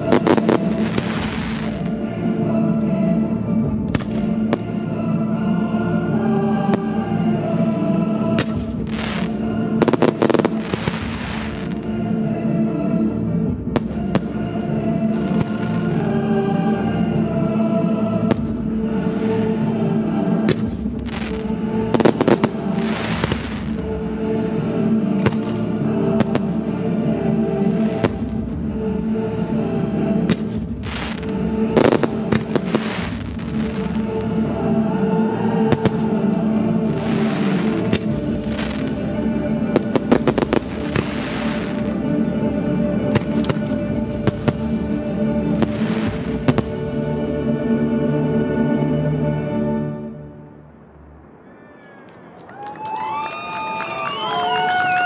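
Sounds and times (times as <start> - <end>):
firework crackle: 0.0 - 1.9, 8.4 - 11.8, 20.5 - 23.9, 30.3 - 34.2, 36.9 - 39.0, 39.8 - 42.0, 45.6 - 46.8
classical music: 0.0 - 51.4.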